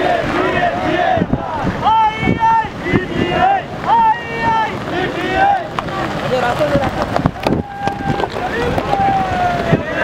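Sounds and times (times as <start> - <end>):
people shouting and calling out: 0.0 - 10.0
wind buffeting microphone: 0.0 - 10.0.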